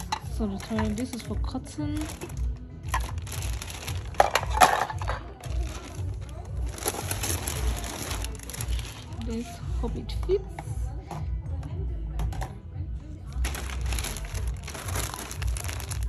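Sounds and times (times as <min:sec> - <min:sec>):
knock of plastic or glass items: 0:00.0 - 0:05.8
plastic bag rustling: 0:00.0 - 0:09.6, 0:13.3 - 0:16.0
background music beat: 0:00.0 - 0:16.0.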